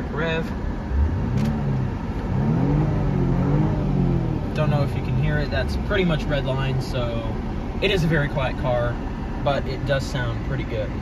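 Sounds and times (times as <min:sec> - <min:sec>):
car engine revving: 0:00.2 - 0:11.0.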